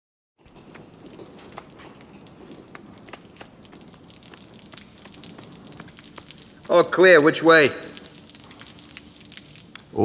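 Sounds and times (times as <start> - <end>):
quick footsteps on stone floor: 0.4 - 6.6
room ambience hiss: 0.5 - 10.0.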